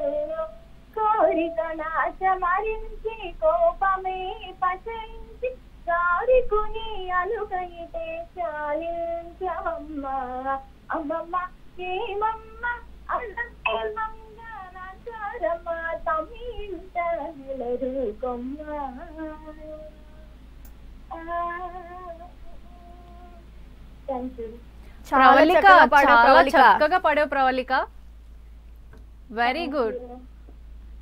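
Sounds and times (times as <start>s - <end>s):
woman singing through phone line: 0.0s - 2.2s, 13.1s - 14.4s
woman singing devotional song: 0.0s - 20.3s, 21.1s - 27.0s.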